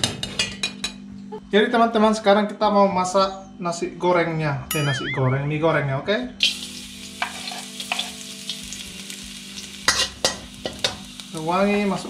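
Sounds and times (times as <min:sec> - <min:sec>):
garlic sizzling in hot oil: 0:06.4 - 0:12.0.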